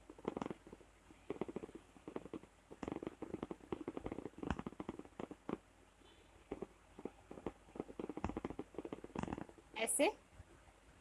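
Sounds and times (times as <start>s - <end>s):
fingers winding thread around wire: 0.0s - 5.7s, 6.5s - 9.7s.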